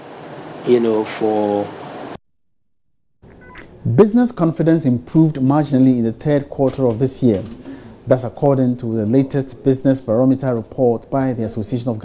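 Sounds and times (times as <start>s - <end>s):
man speaking: 0.7s - 1.7s, 3.8s - 12.0s.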